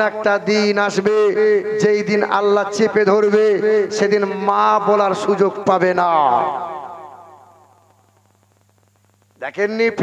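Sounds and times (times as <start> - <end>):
man's voice through loudspeakers: 0.0 - 7.2, 9.4 - 10.0
faint electrical hum: 0.0 - 10.0.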